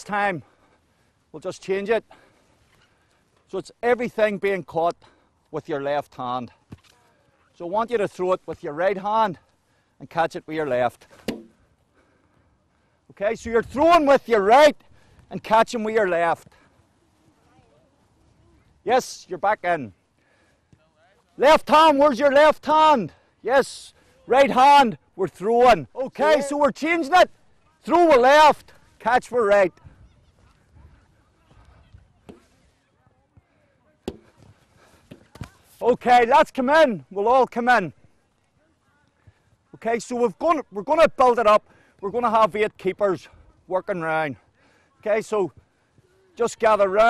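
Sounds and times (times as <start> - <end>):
ball slapping gloved hands: 11.2 - 11.5.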